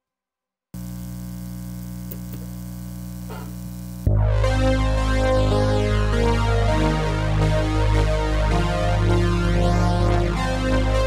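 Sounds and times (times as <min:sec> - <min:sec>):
static hiss: 0:00.8 - 0:04.1
buzzing electrical hum: 0:00.8 - 0:04.4.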